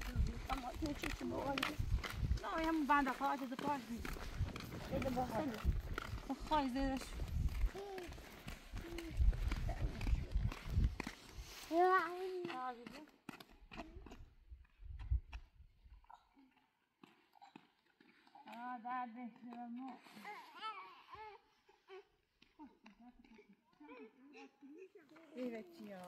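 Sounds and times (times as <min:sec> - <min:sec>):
wind rumbling on microphone: 0:00.0 - 0:03.1, 0:03.9 - 0:11.5, 0:14.2 - 0:16.0
footsteps on paved road: 0:00.0 - 0:21.3, 0:25.0 - 0:26.0.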